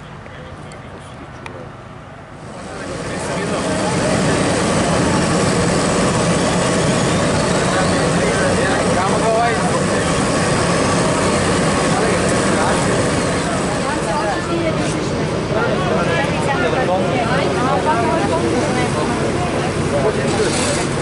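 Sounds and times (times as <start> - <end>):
diesel engine running loudly: 2.4 - 21.0.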